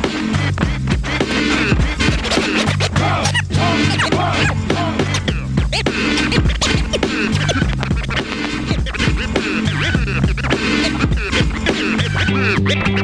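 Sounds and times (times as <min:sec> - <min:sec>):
hip hop beat: 0:00.0 - 0:13.0
repeating bass line: 0:00.0 - 0:13.0
vinyl scratching: 0:00.0 - 0:13.0.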